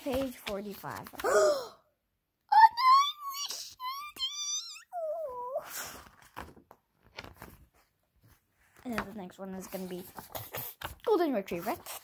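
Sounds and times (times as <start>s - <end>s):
child wailing: 2.5s - 5.6s.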